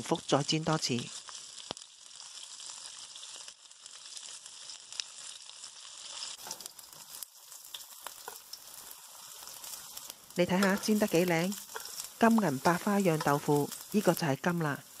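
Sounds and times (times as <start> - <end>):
food sizzling in oil: 0.0 - 15.0
metal tongs clicking: 10.6 - 12.1.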